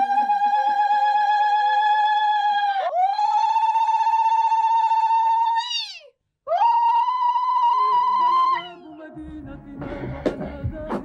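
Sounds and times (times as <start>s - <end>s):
woman ululating: 0.0s - 8.8s.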